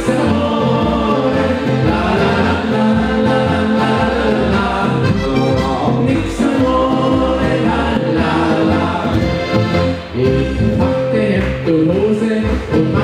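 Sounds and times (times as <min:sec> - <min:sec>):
button accordion: 0:00.0 - 0:11.0
several voices singing: 0:00.0 - 0:13.0
upright double bass: 0:00.0 - 0:13.0.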